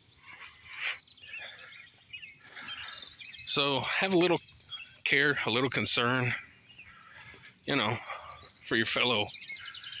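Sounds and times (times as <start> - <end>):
small birds chirping: 0.0 - 10.0.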